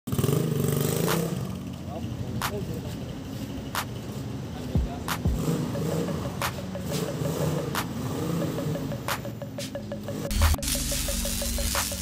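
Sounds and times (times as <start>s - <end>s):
motorcycle pulling away: 0.1s - 2.4s, 5.2s - 9.0s.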